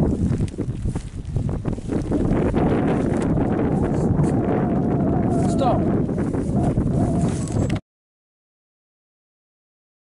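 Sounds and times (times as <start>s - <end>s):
wind buffeting microphone: 0.0s - 7.8s.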